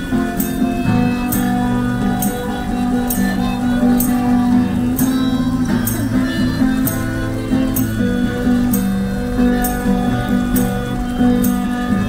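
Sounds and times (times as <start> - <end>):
harmonica playing: 0.0 - 12.0
strummed acoustic guitar: 0.0 - 12.0.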